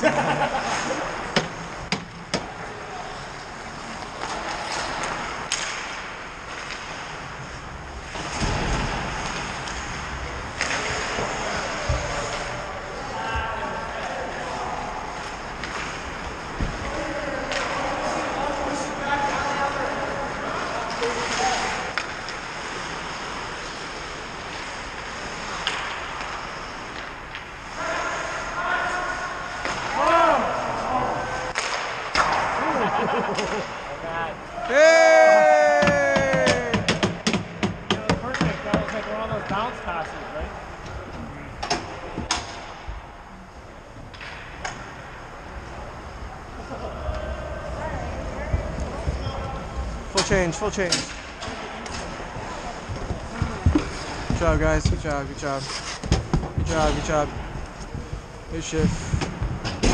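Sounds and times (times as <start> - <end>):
hockey sticks and puck clacking: 0.0 - 12.6, 13.2 - 28.5, 29.4 - 30.8, 31.4 - 33.9, 34.6 - 40.3, 44.0 - 45.2, 46.6 - 59.9
players shouting: 34.4 - 37.2.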